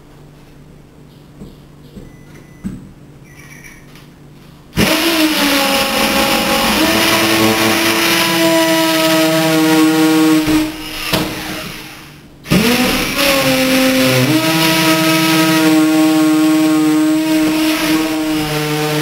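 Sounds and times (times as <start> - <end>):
cordless drill drilling into mortar: 4.8 - 16.1.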